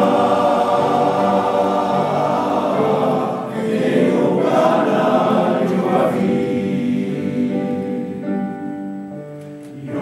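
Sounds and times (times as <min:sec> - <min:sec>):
men's choir singing: 0:00.0 - 0:08.3, 0:09.7 - 0:10.0.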